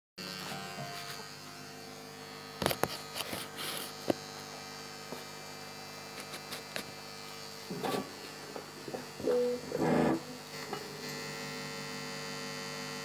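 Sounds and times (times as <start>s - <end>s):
guitar amplifier hum and buzz: 0.2s - 13.0s.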